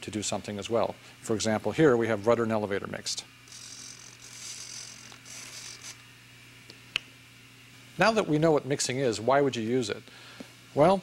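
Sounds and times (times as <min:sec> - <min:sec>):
servos whirring in buzzy bursts: 0:03.4 - 0:06.0.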